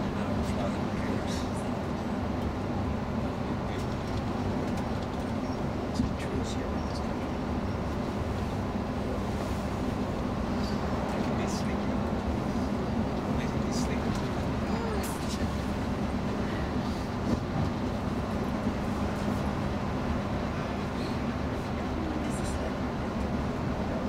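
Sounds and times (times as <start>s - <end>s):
bus engine hum and road noise: 0.0s - 24.0s.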